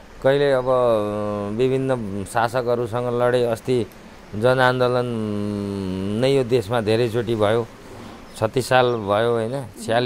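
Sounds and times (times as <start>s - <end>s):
man speaking: 0.2s - 7.7s, 8.4s - 10.0s.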